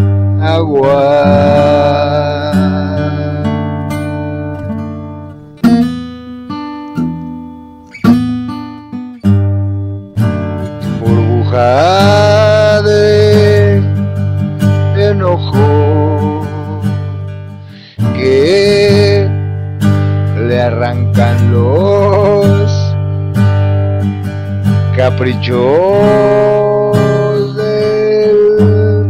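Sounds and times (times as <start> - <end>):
acoustic guitar chords: 0.0 - 29.0.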